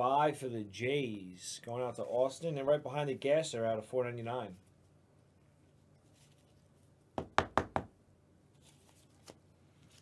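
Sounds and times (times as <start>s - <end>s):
knocks on a hard surface: 7.2s - 7.9s.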